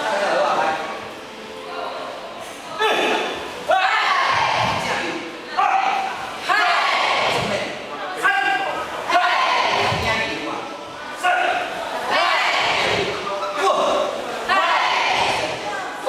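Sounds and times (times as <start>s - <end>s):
group shouting in unison: 2.8s - 4.9s, 5.5s - 7.5s, 8.2s - 10.0s, 11.2s - 13.1s, 14.5s - 15.6s.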